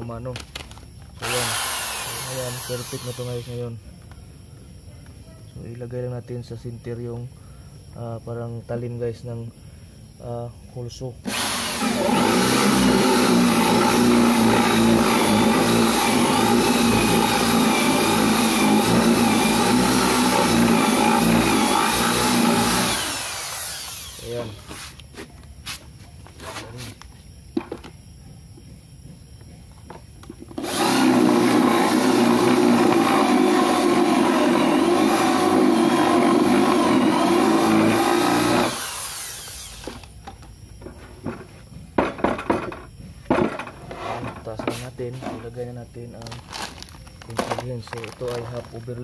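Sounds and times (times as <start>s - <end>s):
electric drill boring into wood: 1.2s - 3.6s, 11.2s - 24.7s, 30.6s - 40.1s.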